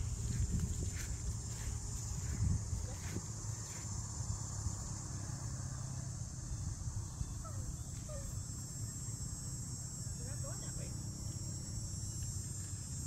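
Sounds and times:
insects droning in grass: 0.0 - 13.0.

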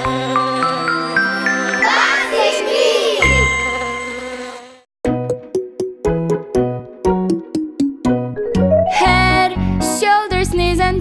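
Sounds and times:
bright ding: 3.3 - 4.4.

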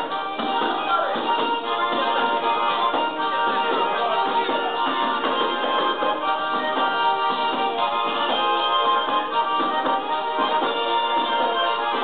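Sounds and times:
button accordion dance music: 0.0 - 12.0.

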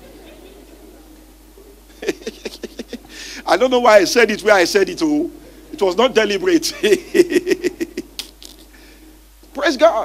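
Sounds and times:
man laughing into a microphone: 1.9 - 3.1, 6.7 - 8.7.

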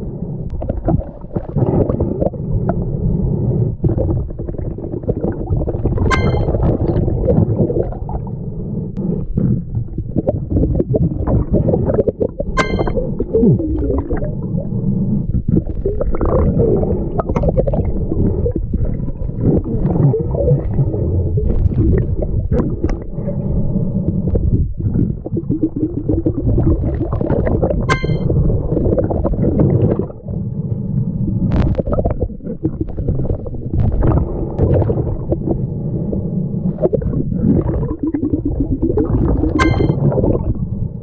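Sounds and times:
muffled underwater rumbling: 0.0 - 41.0
sharp clicks underwater: 0.4 - 8.4, 9.0 - 16.5, 21.6 - 23.1, 24.2 - 40.9.

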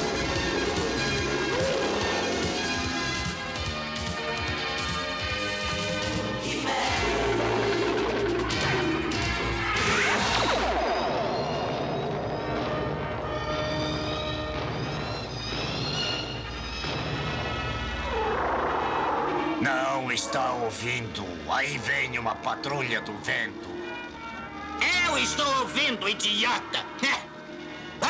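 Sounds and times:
dramatic cartoon score: 0.0 - 28.0.

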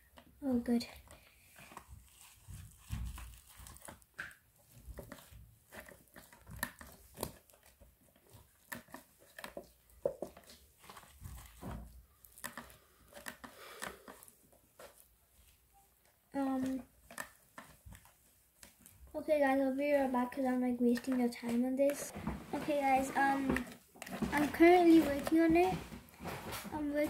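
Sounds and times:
plastic sheeting crinkling: 0.4 - 27.0.

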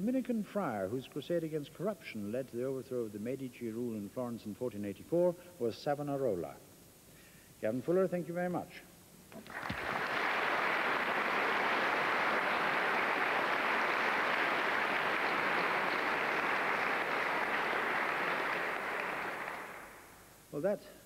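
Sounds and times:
audience applauding: 9.4 - 20.2.

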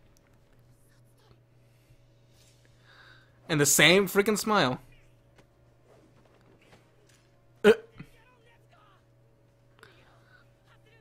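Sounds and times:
faint steady hum: 0.0 - 11.0
man grunting uh: 7.6 - 8.1.

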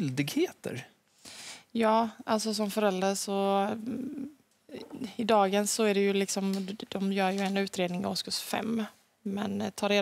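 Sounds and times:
person speaking: 1.8 - 10.0.

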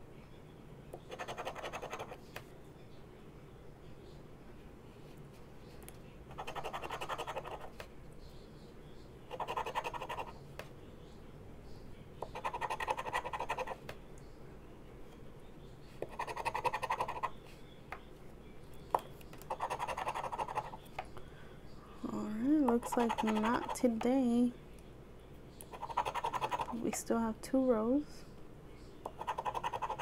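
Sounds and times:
scratching lottery ticket coating: 6.3 - 7.6, 19.5 - 20.8, 22.8 - 23.9, 25.8 - 26.9, 29.2 - 30.0.

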